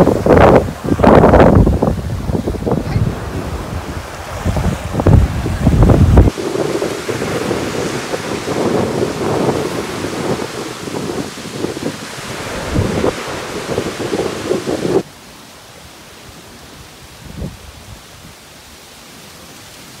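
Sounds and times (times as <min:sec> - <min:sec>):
wind buffeting microphone: 0:00.0 - 0:15.1.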